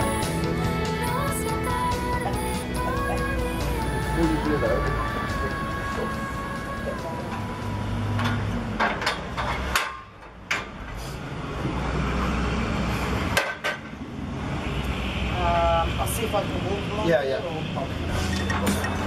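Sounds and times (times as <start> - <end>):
knocks and clanks on metal scaffolding: 8.1 - 10.9, 13.3 - 14.0.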